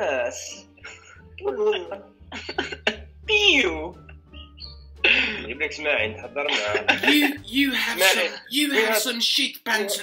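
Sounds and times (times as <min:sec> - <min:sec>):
sharp coughing bursts: 0:02.3 - 0:03.1
person speaking: 0:06.7 - 0:10.0.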